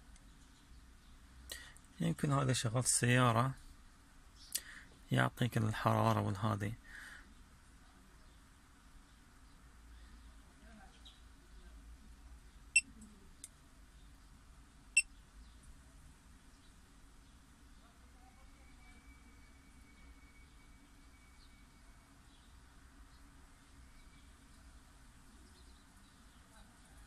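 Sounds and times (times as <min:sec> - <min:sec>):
low steady hum: 0:00.0 - 0:27.0.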